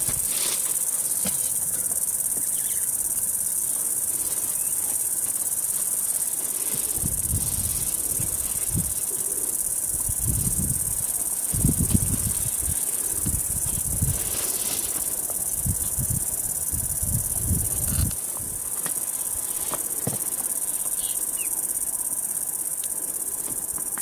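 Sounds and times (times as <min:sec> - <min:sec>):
insects trilling: 0:00.0 - 0:24.0.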